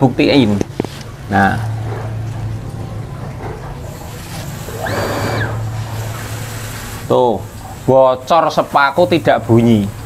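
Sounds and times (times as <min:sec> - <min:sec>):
steady low hum: 0:00.0 - 0:10.0
water hissing through valve: 0:03.9 - 0:10.0.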